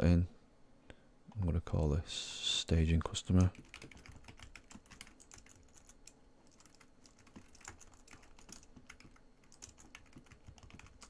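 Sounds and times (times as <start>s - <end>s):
typing on computer keyboard: 3.4s - 11.0s.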